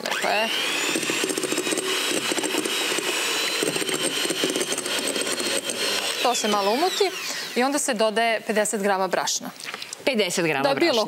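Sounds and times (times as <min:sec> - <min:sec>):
electric hand mixer whining: 0:00.0 - 0:08.3.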